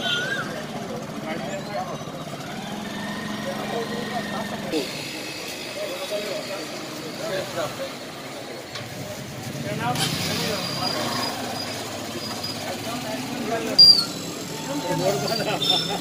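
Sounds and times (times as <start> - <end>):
motorcycle engines idling: 0.0 - 16.0
people talking: 0.0 - 16.0.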